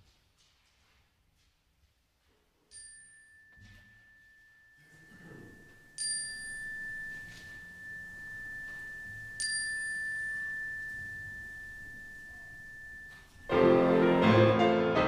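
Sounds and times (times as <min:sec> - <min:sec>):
metal chime ringing: 0:02.7 - 0:14.3
grand piano playing: 0:13.3 - 0:15.0.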